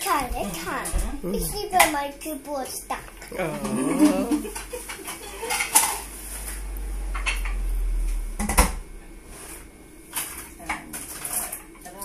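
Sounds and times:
short wavering vocal sound: 0:03.3 - 0:04.6
dishes and cutlery clinking: 0:03.6 - 0:06.1.

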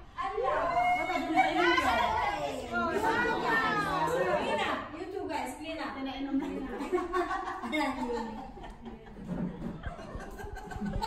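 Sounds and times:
people talking in high voices: 0:00.1 - 0:06.6.

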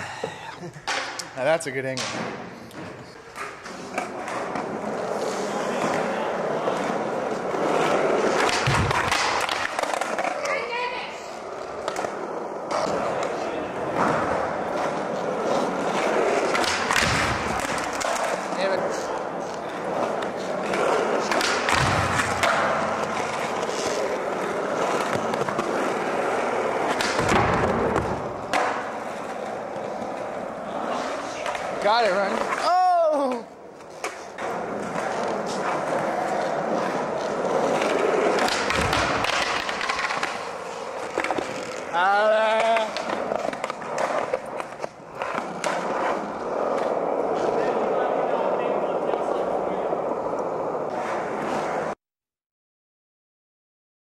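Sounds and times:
skateboard wheels rolling on concrete: 0:00.0 - 0:52.0
skateboard trick thuds and clacks: 0:07.6 - 0:10.3, 0:15.9 - 0:18.4, 0:20.7 - 0:28.8, 0:34.8 - 0:41.9.

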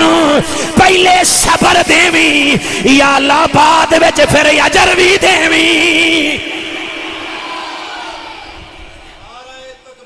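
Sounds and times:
man singing over loudspeaker: 0:00.0 - 0:07.4.

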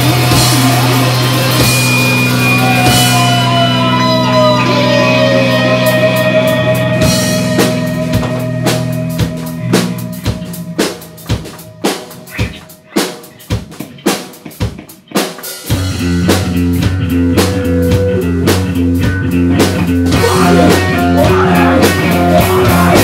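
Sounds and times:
drums playing alone: 0:00.0 - 0:23.0
live rock band: 0:00.0 - 0:23.0.

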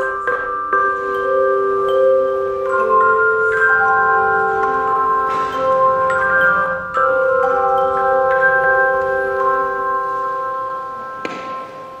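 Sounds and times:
handbells ringing: 0:00.0 - 0:12.0.

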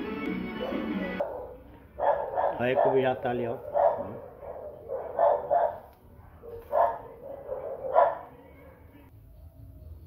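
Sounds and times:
dog barking: 0:00.6 - 0:09.0.

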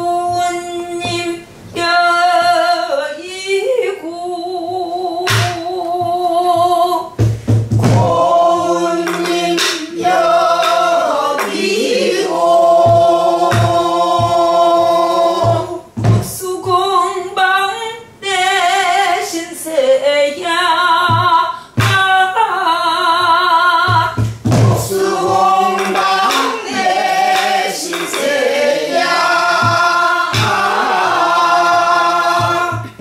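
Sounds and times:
woman singing with vibrato: 0:00.0 - 0:07.2, 0:07.8 - 0:33.0
barrel drum thumps: 0:05.3 - 0:09.8, 0:12.7 - 0:16.8, 0:23.2 - 0:28.3, 0:29.0 - 0:33.0.

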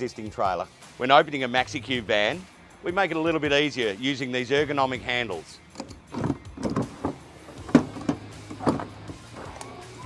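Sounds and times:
soft background music: 0:00.0 - 0:10.0
metallic clunks of door latches: 0:05.7 - 0:09.6.

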